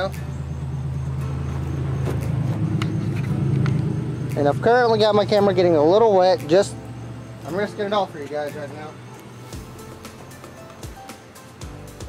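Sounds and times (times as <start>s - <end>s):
low motor hum: 0.0s - 7.9s.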